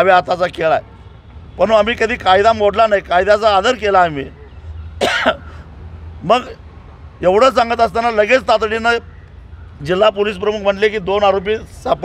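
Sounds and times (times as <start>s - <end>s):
man clearing throat: 5.0s - 5.6s.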